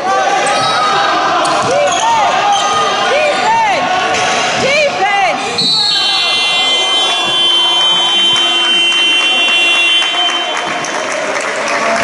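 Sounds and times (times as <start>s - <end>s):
voices: 0.0s - 12.0s
sneakers squeaking on court: 0.4s - 3.5s.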